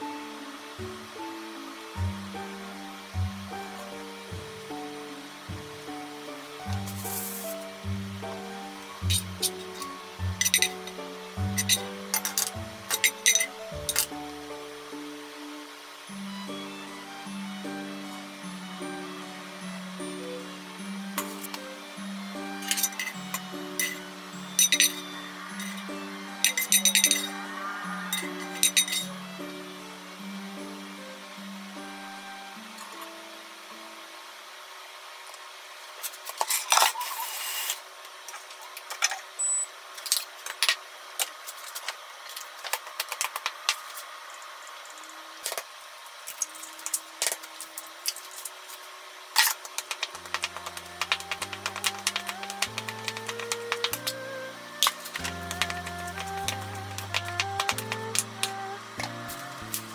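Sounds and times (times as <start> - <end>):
gentle background music: 0.0 - 35.8, 43.6 - 59.9
utensils clinking: 9.1 - 14.1, 22.6 - 25.8, 26.4 - 27.3, 28.2 - 29.0.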